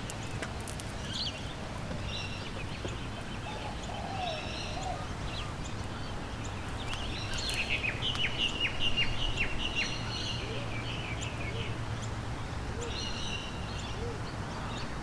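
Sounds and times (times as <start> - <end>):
birds calling and chirping: 0.0 - 15.0.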